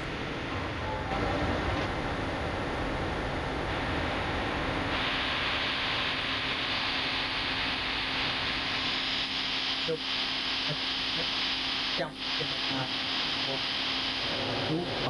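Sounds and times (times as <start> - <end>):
steady hiss and room noise: 0.0 - 15.0.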